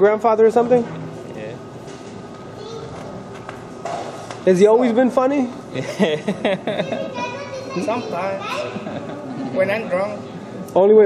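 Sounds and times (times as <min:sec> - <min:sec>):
men talking: 0:00.0 - 0:01.8, 0:04.4 - 0:11.0
men laughing heartily: 0:05.7 - 0:07.2, 0:08.7 - 0:09.6.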